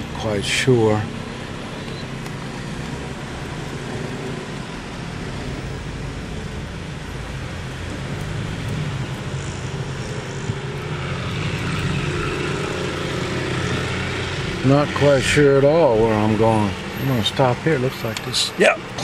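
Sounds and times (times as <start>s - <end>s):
car engine and tyre noise: 0.0s - 19.0s.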